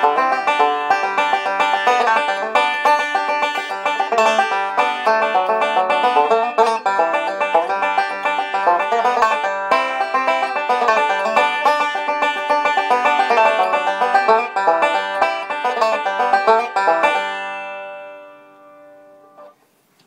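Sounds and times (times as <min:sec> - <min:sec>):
banjo fast picking: 0:00.0 - 0:18.5.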